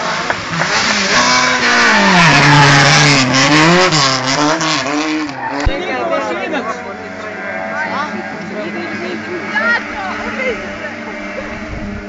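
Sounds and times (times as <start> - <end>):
race car engine passing by: 0.0 - 12.0
road and exhaust noise: 0.0 - 12.0.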